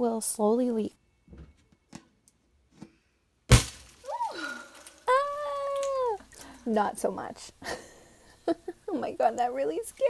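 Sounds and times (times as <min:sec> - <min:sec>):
balloon bursting bang: 0:03.5 - 0:04.0
held vocal cry: 0:04.0 - 0:06.3
person crying out startled: 0:04.0 - 0:06.3.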